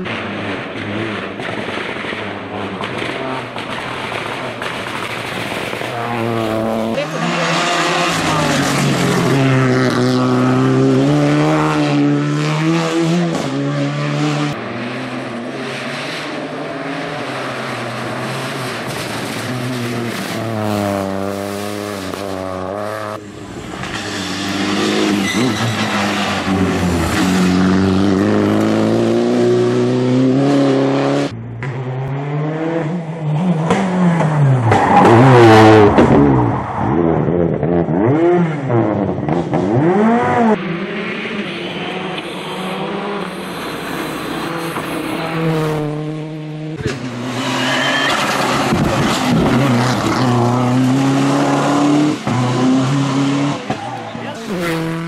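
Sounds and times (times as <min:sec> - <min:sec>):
rally car engines revving past: 0:00.0 - 0:55.0.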